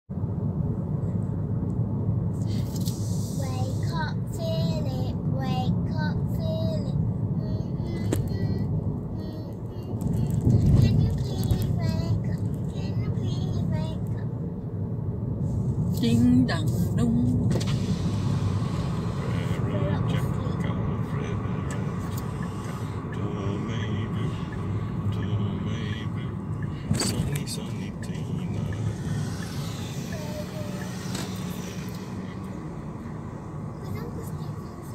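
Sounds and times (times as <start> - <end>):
car rumbling on road: 0.1 - 34.9
girl singing: 3.5 - 14.2.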